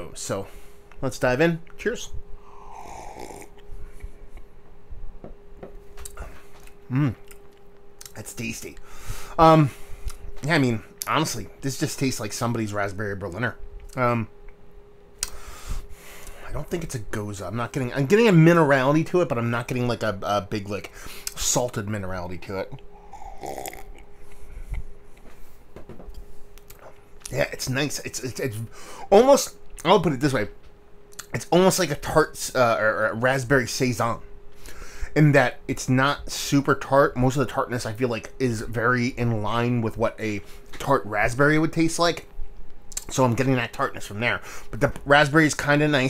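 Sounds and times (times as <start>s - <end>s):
faint steady hum: 0.0s - 46.0s
man slurping beer: 2.6s - 3.6s, 23.0s - 24.0s
person gulping: 2.6s - 3.7s, 23.0s - 24.8s
swallowing: 23.0s - 24.8s.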